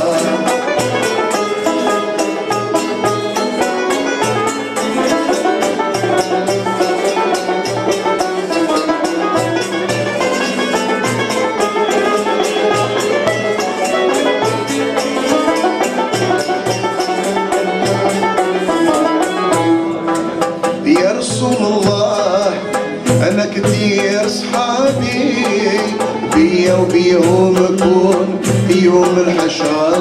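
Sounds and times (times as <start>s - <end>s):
lute and banjo plucking: 0.0s - 30.0s
percussion beat: 0.0s - 30.0s
violin melody: 0.0s - 30.0s.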